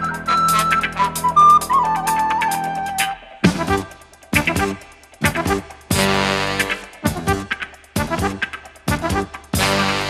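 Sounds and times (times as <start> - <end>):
recorder melody: 0.0 - 8.5
funk backing track: 0.0 - 10.0.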